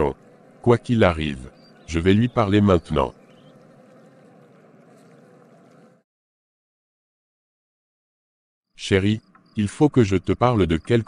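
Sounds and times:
faint wavering hum: 0.0s - 6.0s.

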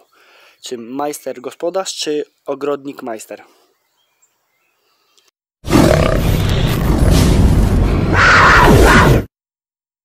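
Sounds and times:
dense sound effect with deep rumble: 6.0s - 8.2s.

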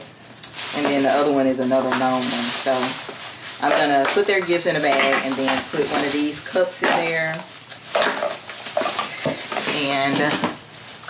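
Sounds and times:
plastic bag crinkling: 0.1s - 11.0s.

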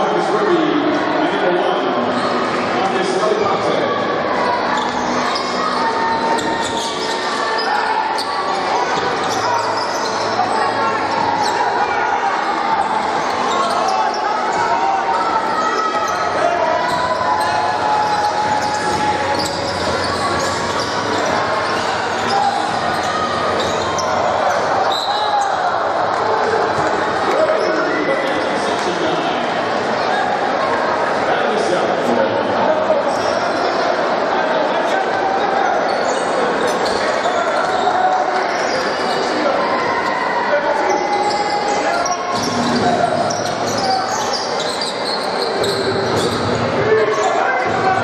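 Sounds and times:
crowd talking in echoing gym: 0.0s - 48.0s.

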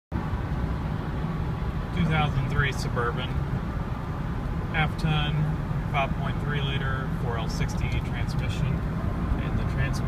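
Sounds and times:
car engine drone: 0.1s - 10.0s
road noise: 0.1s - 10.0s.

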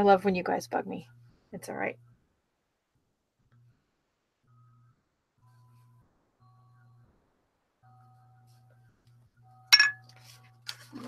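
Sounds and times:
sharp clink with brief ring: 9.7s - 10.0s.

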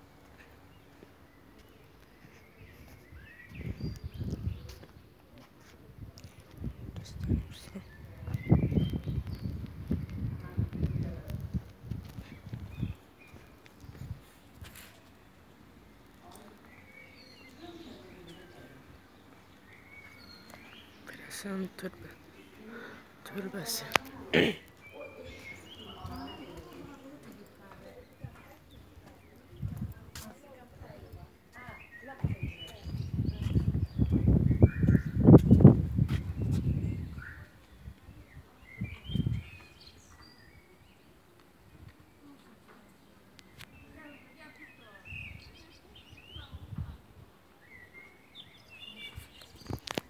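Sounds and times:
small birds chirping: 0.0s - 50.0s
faint unintelligible voices: 20.1s - 33.9s.

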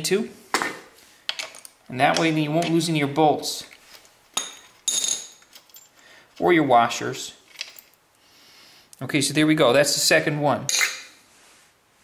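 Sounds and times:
metal clinks of tools: 4.4s - 6.0s.

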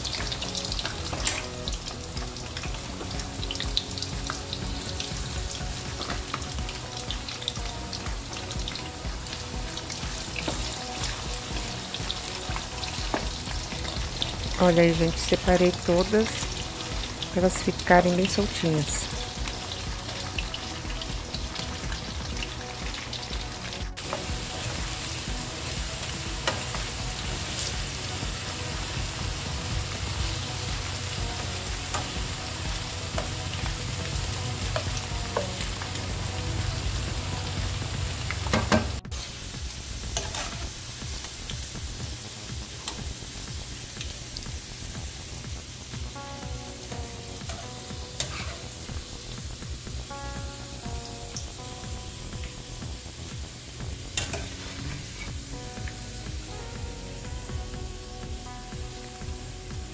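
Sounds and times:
potatoes sizzling in hot oil: 0.0s - 59.9s.

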